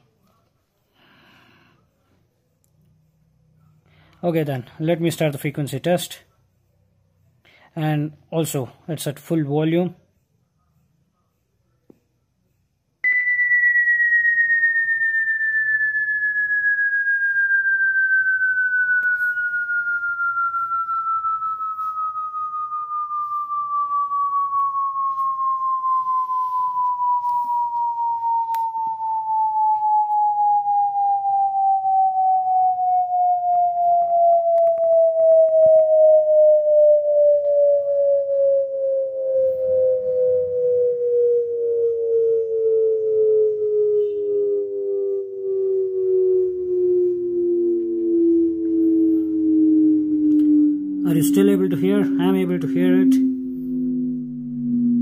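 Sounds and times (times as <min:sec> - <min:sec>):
sine tone sweeping down in pitch: 0:13.0 - 0:55.0.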